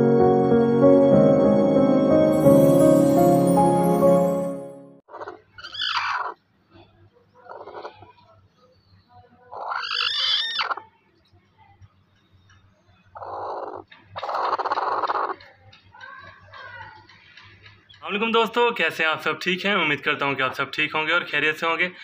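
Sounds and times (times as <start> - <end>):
broody hen grumbling calls: 7.4 - 8.2, 9.5 - 10.8, 13.2 - 15.4.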